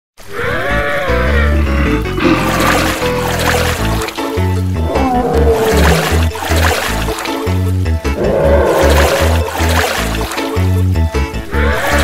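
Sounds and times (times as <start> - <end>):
background music with bass: 0.6 - 12.0
animal call rising and falling: 4.8 - 6.4, 8.2 - 9.7.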